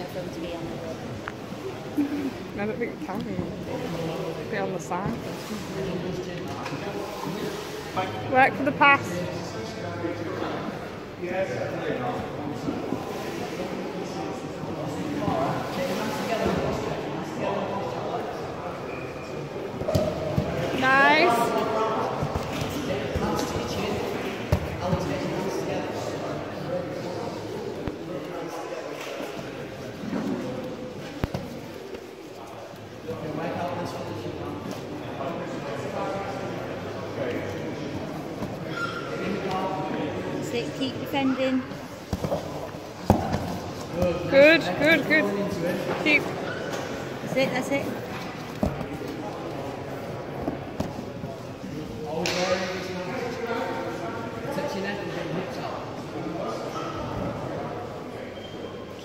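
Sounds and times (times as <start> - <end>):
chatter of many voices: 0.0 - 59.0.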